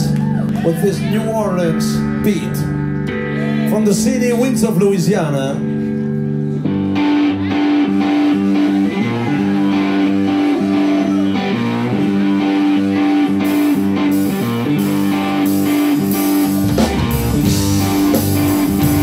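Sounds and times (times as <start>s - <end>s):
bass guitar: 0.0s - 19.0s
electric guitar riff: 0.0s - 19.0s.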